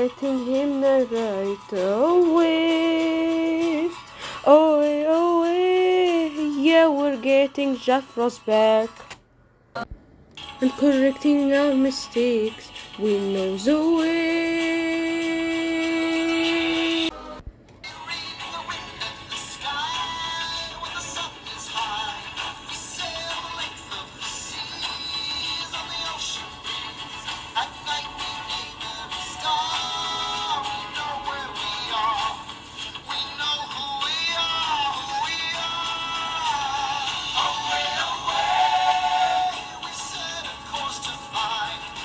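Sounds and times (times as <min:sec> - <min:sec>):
song music: 0:10.4 - 0:42.0
processed singing voice: 0:10.6 - 0:17.3, 0:17.9 - 0:26.5, 0:27.4 - 0:32.5, 0:33.1 - 0:42.0.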